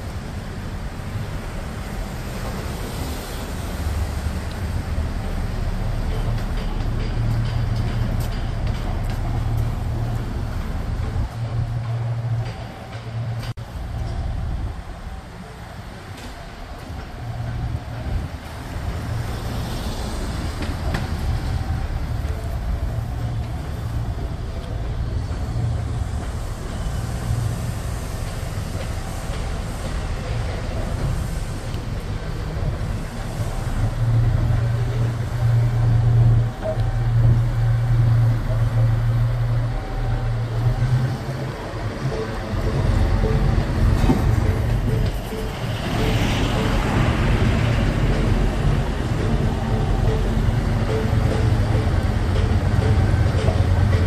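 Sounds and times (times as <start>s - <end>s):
crane diesel engine rumbling: 0.0s - 54.0s.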